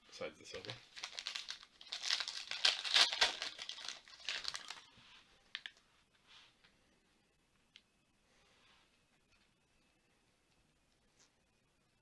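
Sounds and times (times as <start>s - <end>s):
wrapper crinkling and tearing: 0.6s - 4.9s, 5.5s - 5.8s.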